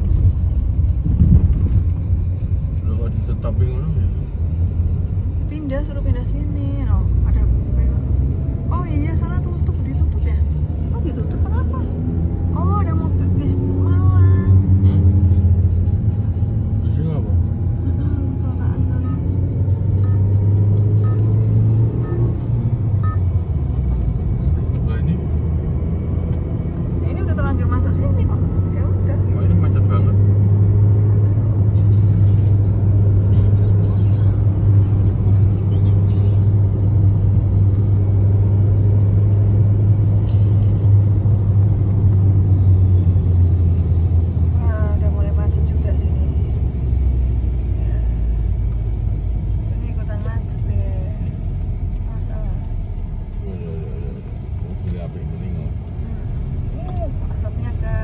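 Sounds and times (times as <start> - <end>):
tyre and engine rumble in car: 0.0 - 58.0.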